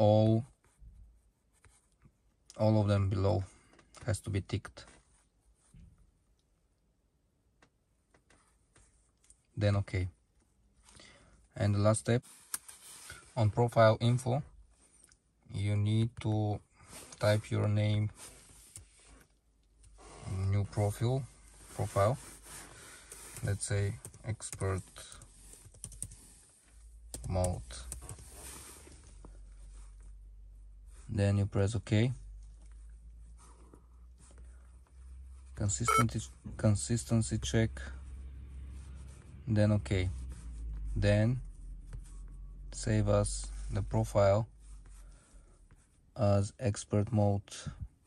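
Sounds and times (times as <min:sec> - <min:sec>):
person speaking: 0:20.2 - 0:22.4, 0:23.4 - 0:25.3, 0:27.1 - 0:28.0, 0:35.6 - 0:37.6.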